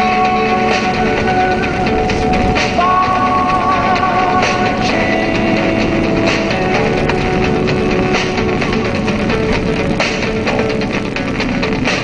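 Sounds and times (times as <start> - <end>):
car radio music: 0.0 - 12.0
engine and road rumble: 0.0 - 12.0.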